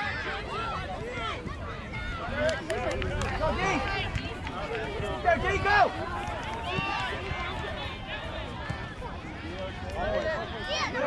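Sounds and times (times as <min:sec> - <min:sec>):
voices calling and shouting: 0:00.0 - 0:11.0.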